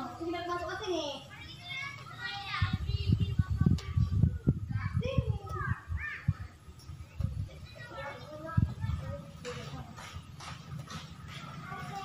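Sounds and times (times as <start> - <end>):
children calling out: 0.0 - 9.6, 11.2 - 12.0.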